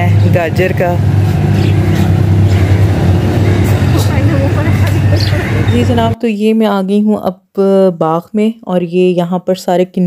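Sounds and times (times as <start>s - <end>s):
indistinct voices: 0.0s - 6.2s
vehicle engine running: 0.0s - 6.2s.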